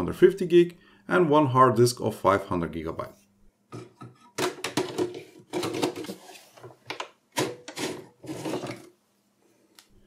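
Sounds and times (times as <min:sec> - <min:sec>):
metal drive sled scraping: 0:07.7 - 0:08.9.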